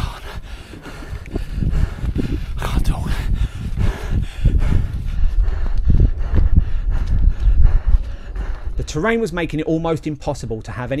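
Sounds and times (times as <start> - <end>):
heavy breathing: 0.0 - 9.0
wind rumbling on microphone: 0.0 - 9.5.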